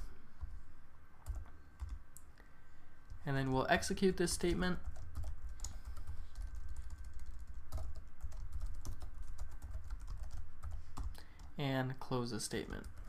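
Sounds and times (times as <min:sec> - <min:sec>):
low steady hum: 0:00.0 - 0:13.0
computer keyboard typing: 0:01.2 - 0:02.0, 0:04.4 - 0:11.6.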